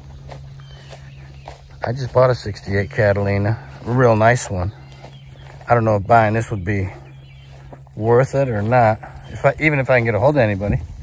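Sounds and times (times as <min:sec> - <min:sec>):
footsteps through tall grass: 0:00.0 - 0:11.0
low outdoor hum: 0:00.0 - 0:11.0.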